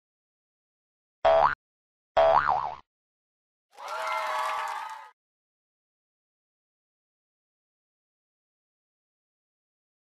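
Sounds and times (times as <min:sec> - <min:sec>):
springy boing: 0:01.3 - 0:01.6, 0:02.2 - 0:02.8.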